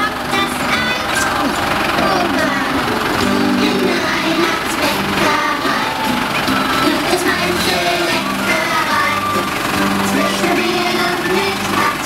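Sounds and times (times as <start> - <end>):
crowd chatter: 0.0 - 12.0
tractor engine running: 0.0 - 12.0.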